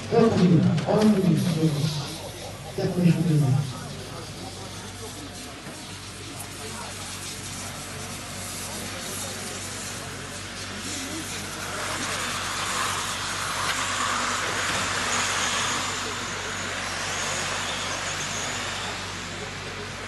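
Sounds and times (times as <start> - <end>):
faint high motor whine: 0.0 - 20.0
radio-controlled cars whirring: 0.0 - 20.0.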